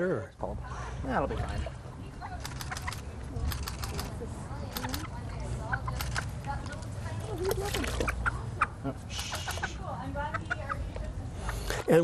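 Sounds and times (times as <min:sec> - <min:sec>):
hen clucking: 0:04.8 - 0:06.4, 0:07.3 - 0:11.9
water splashing: 0:06.1 - 0:08.5.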